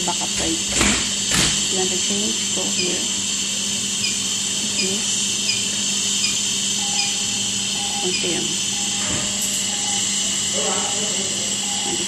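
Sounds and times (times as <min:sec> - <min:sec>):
gas flow hiss: 0:00.0 - 0:10.6
low steady hum: 0:00.0 - 0:12.0.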